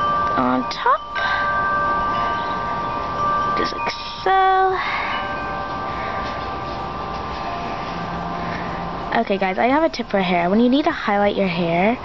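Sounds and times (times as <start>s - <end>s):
sustained chime-like music: 0.0s - 12.0s.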